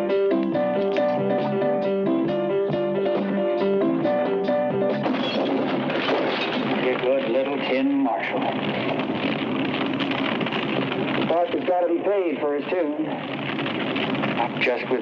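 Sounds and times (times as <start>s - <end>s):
plucked string notes: 0.0s - 5.1s
dense noisy music mix: 0.0s - 7.2s, 8.5s - 11.8s, 13.2s - 15.0s.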